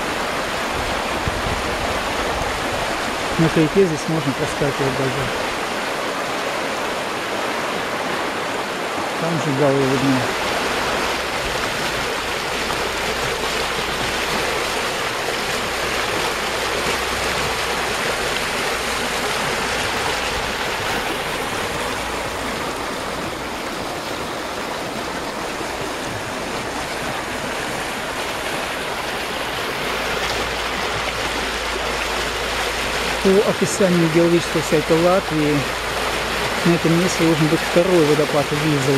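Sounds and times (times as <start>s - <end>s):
river rapids rushing: 0.0s - 38.9s.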